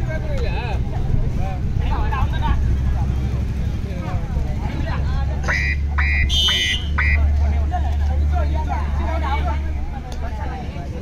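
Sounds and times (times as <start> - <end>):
crowd chatter: 0.0 - 11.0
referee whistle blasts: 5.4 - 7.2.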